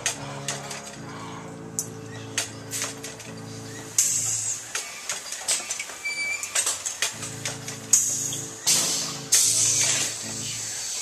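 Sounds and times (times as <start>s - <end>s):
low music drone: 0.0s - 4.6s, 7.2s - 11.0s
mechanism clattering clicks: 1.8s - 3.4s
air hiss bursts: 3.9s - 5.1s, 7.9s - 11.0s.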